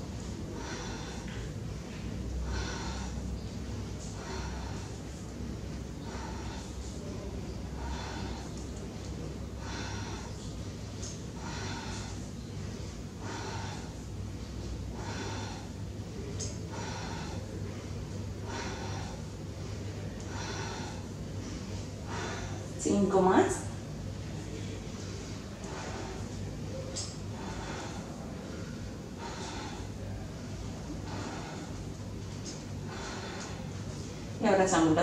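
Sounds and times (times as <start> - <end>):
woman breathing loudly: 0.0 - 23.0, 24.7 - 34.4.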